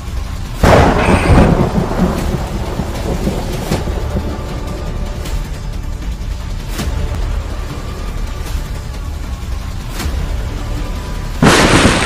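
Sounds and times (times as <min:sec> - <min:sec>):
thunderclap: 0:00.6 - 0:04.4, 0:11.4 - 0:12.0.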